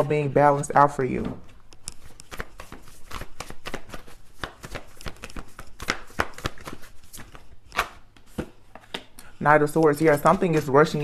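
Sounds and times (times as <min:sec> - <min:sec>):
cards being shuffled: 0:01.4 - 0:11.0.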